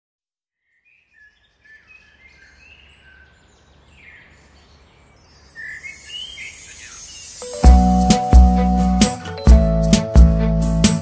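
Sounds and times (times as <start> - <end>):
birds chirping: 0.6 - 9.0
electronic music: 7.4 - 11.0.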